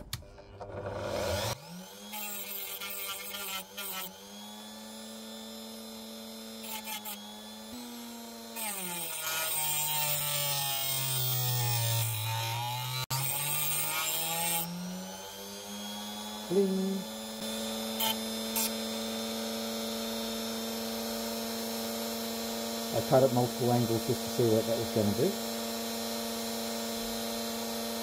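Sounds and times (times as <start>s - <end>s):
rotary tool grinding stone: 0.5s - 19.6s.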